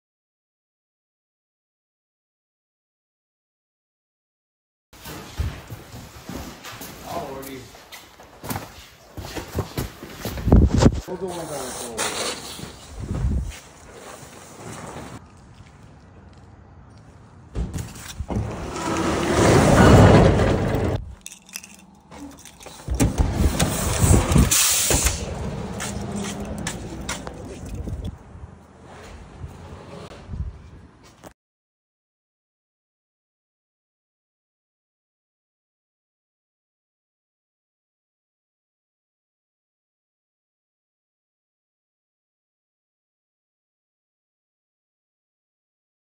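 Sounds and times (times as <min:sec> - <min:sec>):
person speaking: 0:11.0 - 0:12.2
metal roll-up door rattling: 0:18.3 - 0:28.0.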